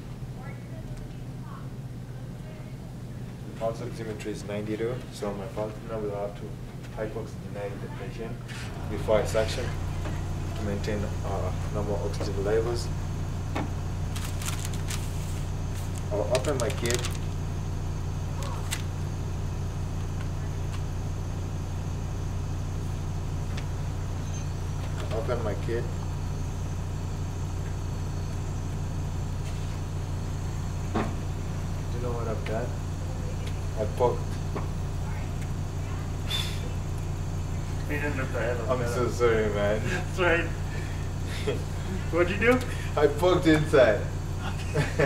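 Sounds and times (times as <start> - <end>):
low hum: 7.4 - 45.0
packaging crinkling: 14.1 - 15.2, 15.8 - 17.4
short hiss: 36.2 - 36.7.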